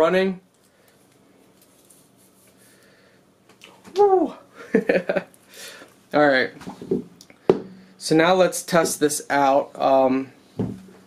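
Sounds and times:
man shouting woo: 3.9 - 4.4.

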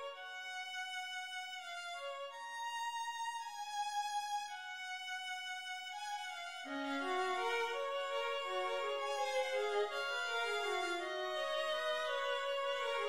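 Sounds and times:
solo violin melody: 0.0 - 13.0.

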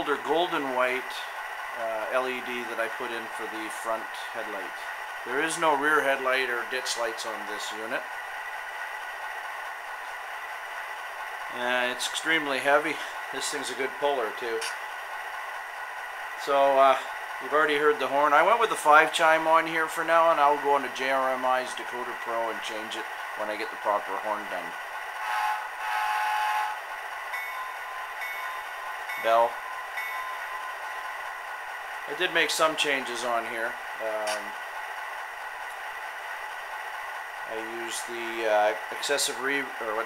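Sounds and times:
model locomotive engine idling: 0.0 - 40.0
model train air horn: 25.2 - 28.0
locomotive bell ringing: 25.2 - 33.5.

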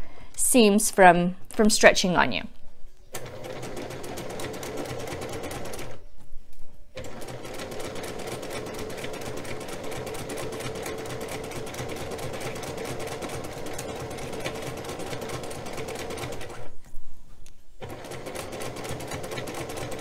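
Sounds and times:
electric sewing machine stitching: 3.2 - 6.0, 7.0 - 16.7, 17.8 - 20.0.

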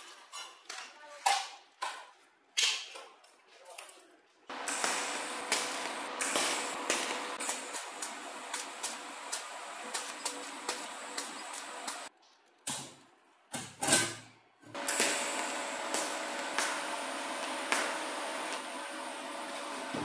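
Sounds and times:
welding arc hissing with ticks: 4.5 - 12.1, 14.7 - 20.0.

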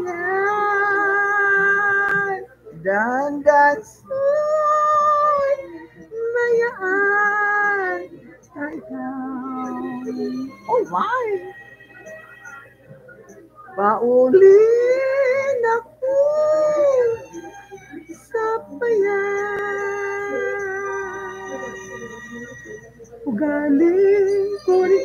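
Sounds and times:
high voice singing: 0.0 - 12.8, 13.7 - 25.0.

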